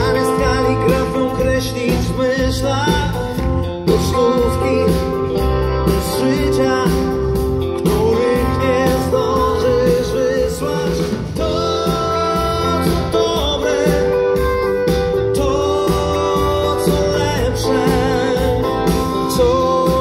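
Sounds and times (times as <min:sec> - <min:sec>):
live pop band with male vocal: 0:00.0 - 0:20.0.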